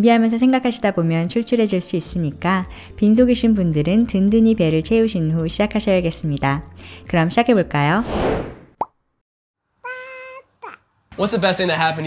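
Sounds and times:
whooshing sweep: 8.0s - 8.8s.

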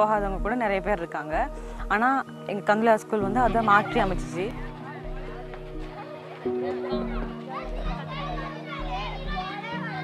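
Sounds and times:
children playing and calling: 3.1s - 10.0s.

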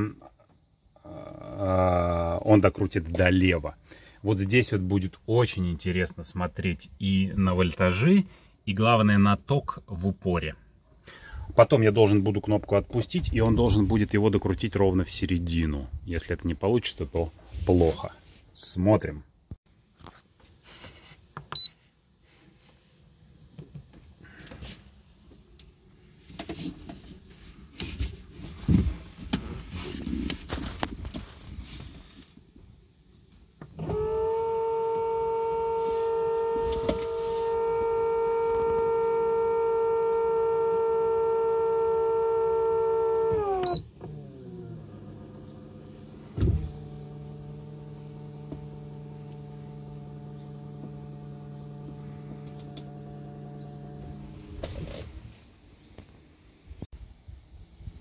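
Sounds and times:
hydraulic pump motor whining: 33.8s - 55.3s.

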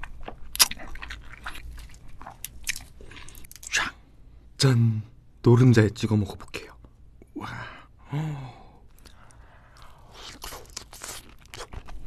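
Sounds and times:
wet chewing: 0.0s - 3.7s, 8.9s - 12.0s.

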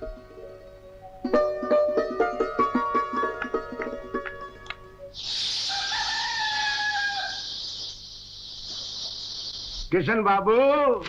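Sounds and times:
steady high-pitched hiss: 4.8s - 11.0s
rooster crowing: 5.4s - 7.8s.

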